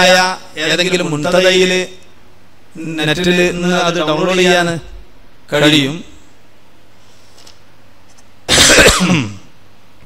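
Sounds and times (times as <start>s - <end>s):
room hiss: 0.0s - 10.0s
man clearing his throat: 8.5s - 9.5s.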